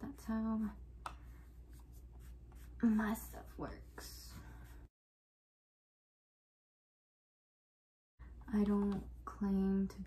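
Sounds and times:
makeup applicator rubbing skin: 0:00.4 - 0:04.9.

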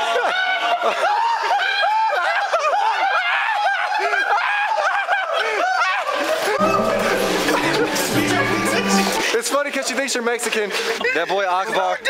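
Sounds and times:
young men laughing: 0:10.4 - 0:12.0.

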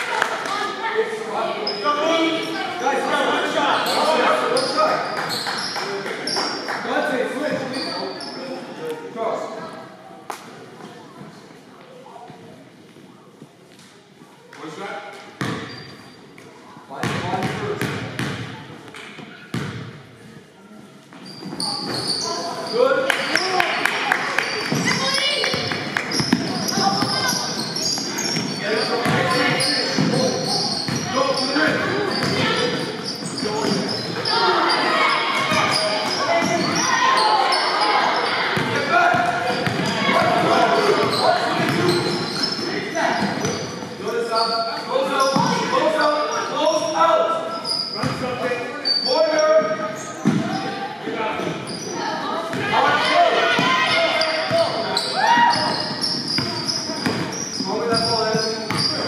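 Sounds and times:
voices shouting: 0:21.7 - 0:43.7, 0:49.1 - 0:59.0
basketball bouncing on wooden floor: 0:24.7 - 0:27.2.

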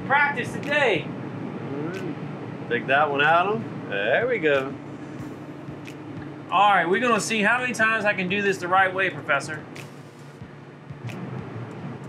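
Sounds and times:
boat engines idling: 0:00.0 - 0:12.0.

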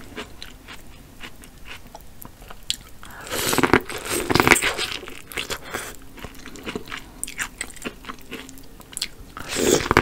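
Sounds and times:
close chewing with mouth clicks: 0:00.0 - 0:10.0.

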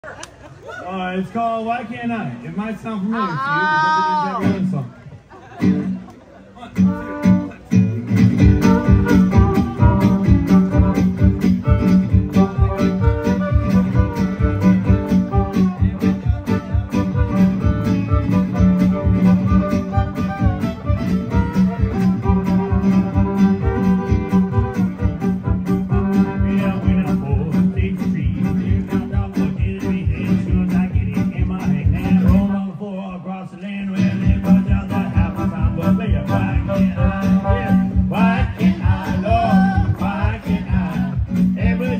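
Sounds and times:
strummed guitar: 0:04.0 - 0:32.7, 0:33.8 - 0:41.9
low beat: 0:06.8 - 0:32.6, 0:33.9 - 0:41.9
bowed fiddle: 0:08.5 - 0:26.4.

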